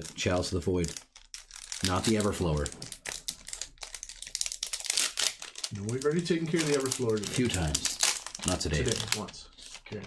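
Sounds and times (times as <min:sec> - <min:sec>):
foil wrapper crinkling and tearing: 0:00.0 - 0:10.0.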